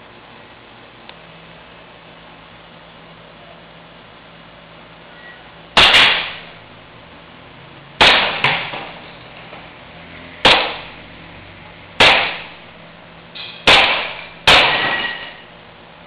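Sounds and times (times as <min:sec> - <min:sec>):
pistol shots: 0:05.8 - 0:06.5, 0:08.0 - 0:08.8, 0:10.4 - 0:10.9, 0:12.0 - 0:12.6, 0:13.6 - 0:15.1.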